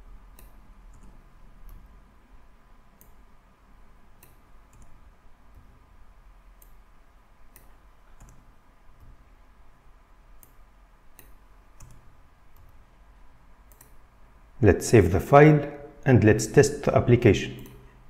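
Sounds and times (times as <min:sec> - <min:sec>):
low room hum: 0:00.0 - 0:18.0
mouse and keyboard clicks: 0:11.2 - 0:12.8.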